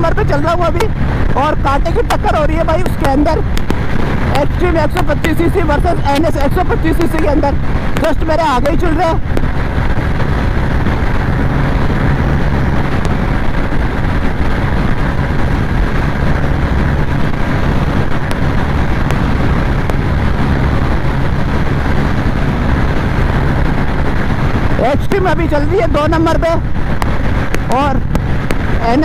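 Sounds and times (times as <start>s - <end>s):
motorcycle engine droning: 0.0s - 29.0s
wind rushing: 0.0s - 29.0s.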